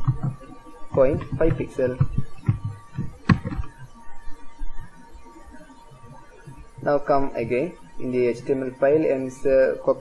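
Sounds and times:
soft low thumps: 0:00.0 - 0:05.0
faint steady hum: 0:00.0 - 0:10.0.

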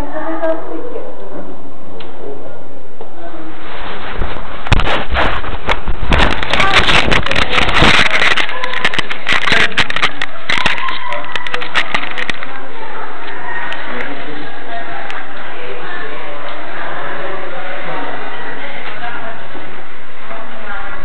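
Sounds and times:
muffled voices: 0:00.0 - 0:21.0
microphone rubbing and crackling: 0:03.2 - 0:16.0.

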